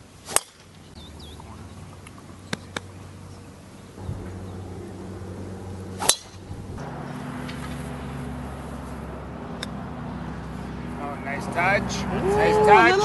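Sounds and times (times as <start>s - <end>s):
steady low hum: 0.0s - 12.2s
golf club striking ball: 4.1s - 10.9s.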